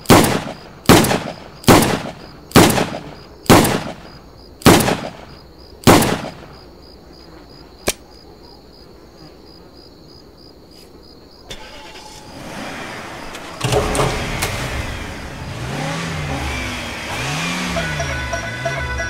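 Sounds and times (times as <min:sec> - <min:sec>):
insects chirping: 0:00.0 - 0:19.0
car engines revving: 0:11.5 - 0:19.0
music: 0:17.5 - 0:19.0.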